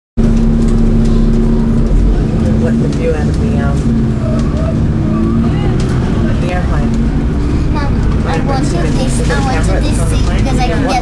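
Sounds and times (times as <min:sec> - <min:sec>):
bus engine rumbling: 0:00.2 - 0:11.0.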